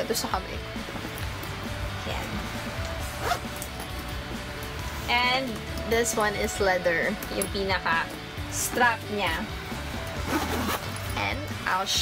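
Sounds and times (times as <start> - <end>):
background music: 0.0 - 12.0
zipper being pulled: 2.2 - 4.0, 10.1 - 11.4.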